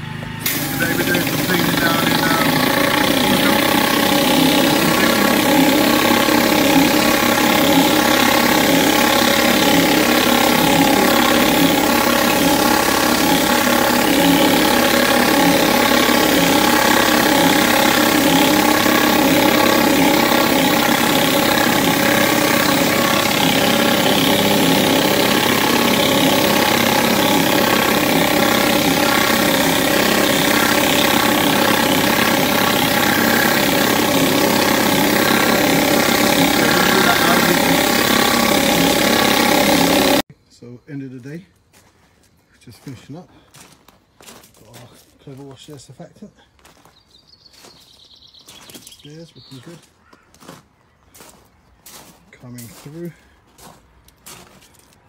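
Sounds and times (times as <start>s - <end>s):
pressure washer engine running: 0.0s - 40.3s
water jetting on wooden deck: 0.4s - 40.3s.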